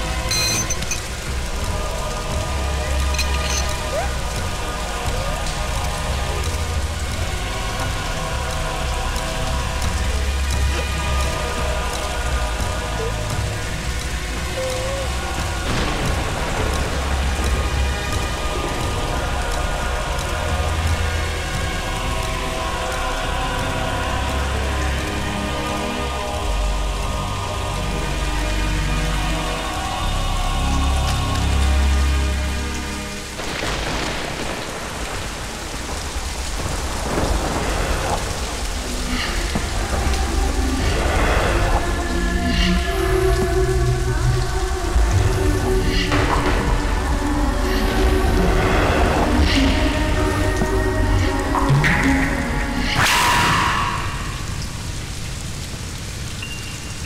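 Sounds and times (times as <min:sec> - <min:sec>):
film score with low swells: 0:00.0 - 0:57.0
heavy rain on pavement: 0:00.0 - 0:57.0.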